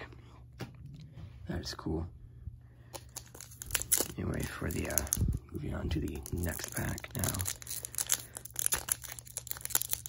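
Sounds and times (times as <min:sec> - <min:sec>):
foil wrapper crinkling: 0:02.9 - 0:10.0.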